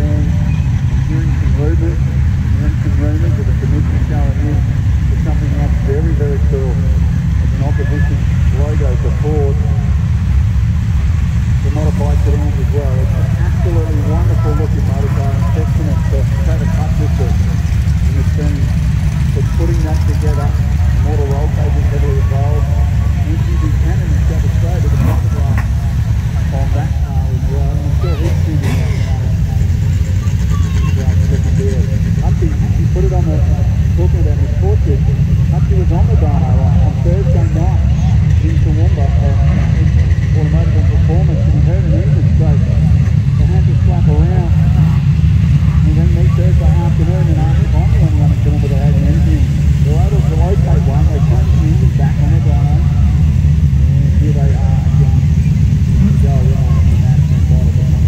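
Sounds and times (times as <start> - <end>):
indistinct voices talking: 0.0 - 58.0
race cars rumbling slowly: 0.0 - 58.0.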